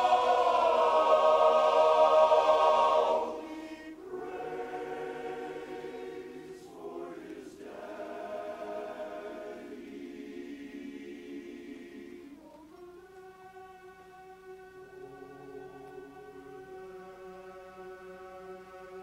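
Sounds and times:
men's chorus singing a cappella: 0:00.0 - 0:12.5.

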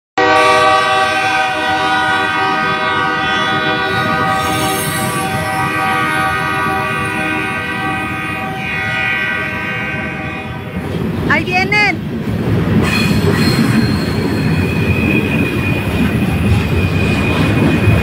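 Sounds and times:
train horn chord: 0:00.2 - 0:10.9
freight train cars rumbling: 0:00.2 - 0:18.0.

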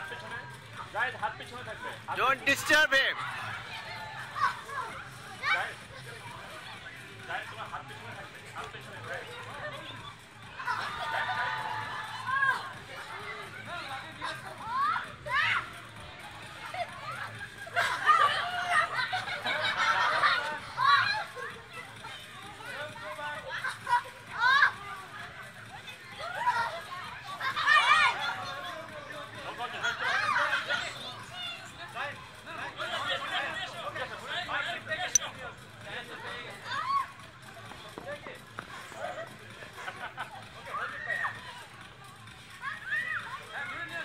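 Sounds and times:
children and adults chatting: 0:00.0 - 0:44.0.

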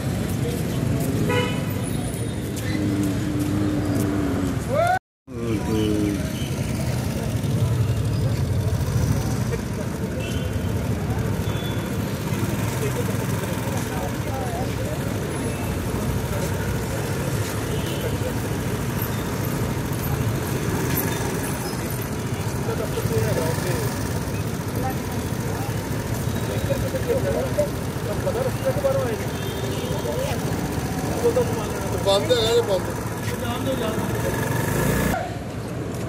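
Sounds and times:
traffic rumble: 0:00.0 - 0:36.0.

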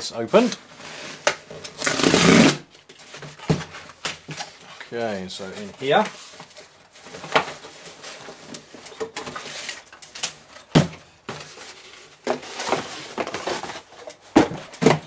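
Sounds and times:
cardboard scraping and rustling: 0:05.4 - 0:10.2, 0:11.3 - 0:15.0.

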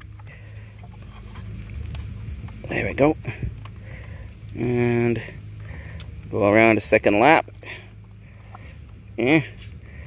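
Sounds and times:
crickets chirping: 0:00.0 - 0:10.0
handling rumble: 0:00.0 - 0:10.0.

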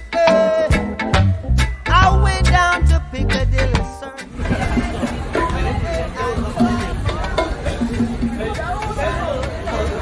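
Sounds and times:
band music: 0:00.0 - 0:10.0
murmur of people chatting: 0:02.7 - 0:10.0.

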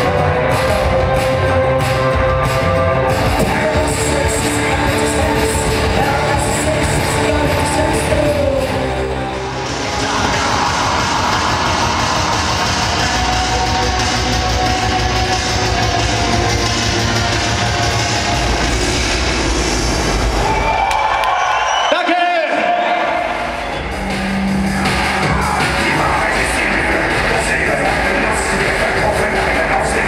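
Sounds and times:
music with heavy low beat: 0:00.0 - 0:20.6, 0:23.3 - 0:30.0.

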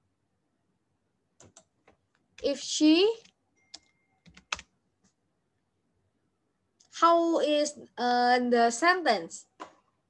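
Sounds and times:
keyboard key clicks: 0:01.4 - 0:02.5.

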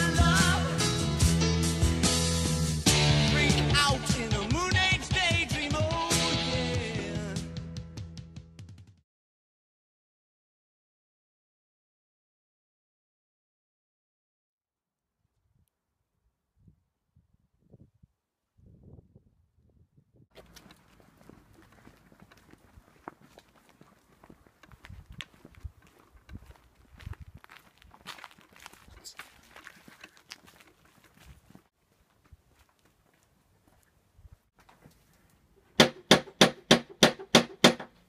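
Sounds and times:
footsteps on pavement: 0:20.3 - 0:34.0
knocking on door: 0:35.8 - 0:37.9.

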